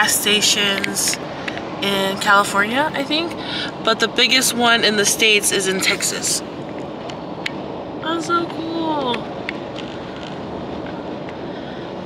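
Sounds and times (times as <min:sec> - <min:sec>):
car road noise inside cabin: 0:00.0 - 0:12.0.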